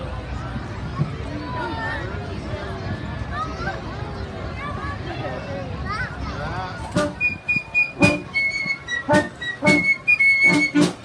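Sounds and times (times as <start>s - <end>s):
concert band playing: 6.9s - 11.0s
flutes holding high notes: 6.9s - 11.0s.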